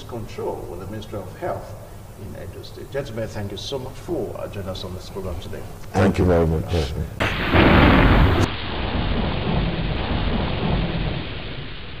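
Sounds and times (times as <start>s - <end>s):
thunder-like rumbling: 7.2s - 12.0s.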